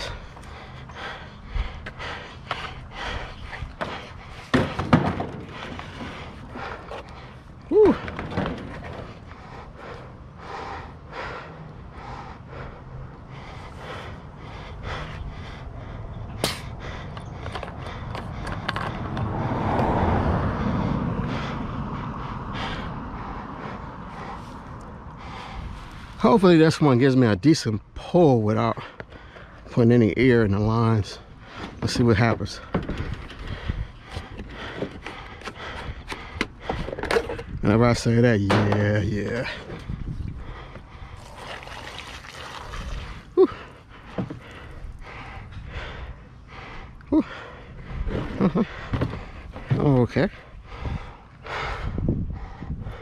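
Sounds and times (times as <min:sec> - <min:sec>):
knocks and clanks of equipment: 0:03.8 - 0:06.4, 0:08.0 - 0:09.2.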